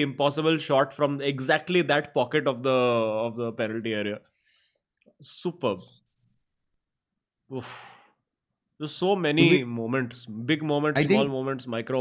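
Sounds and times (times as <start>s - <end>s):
man sighing: 7.5s - 8.1s.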